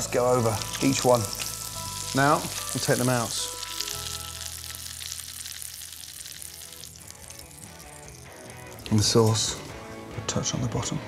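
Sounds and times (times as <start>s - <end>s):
fish sizzling in oil: 0.0s - 10.1s
soft background music: 0.0s - 11.0s.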